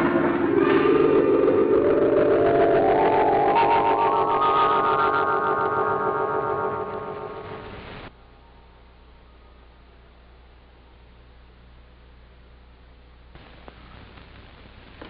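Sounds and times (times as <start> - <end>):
rising sustained orchestral chord: 0.0 - 7.8.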